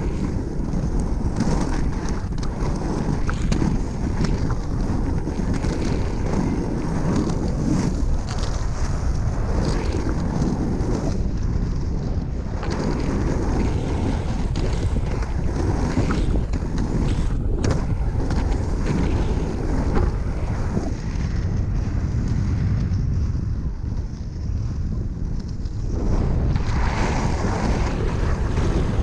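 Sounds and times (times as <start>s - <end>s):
inline skates rolling on asphalt: 0.0s - 29.0s
wind buffeting microphone: 0.0s - 29.0s.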